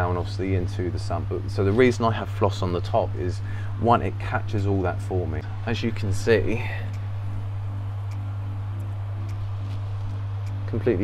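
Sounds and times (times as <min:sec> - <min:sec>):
pump humming: 0:02.2 - 0:11.0.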